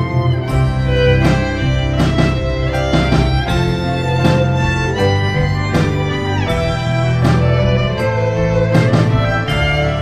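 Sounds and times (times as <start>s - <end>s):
bowed violin notes: 0.0s - 10.0s
low cello line: 0.0s - 10.0s
percussive beat: 0.0s - 10.0s.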